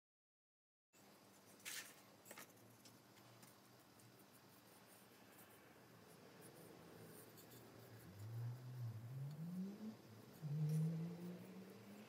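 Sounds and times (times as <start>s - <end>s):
brush scratching on ceramic: 3.4s - 12.0s.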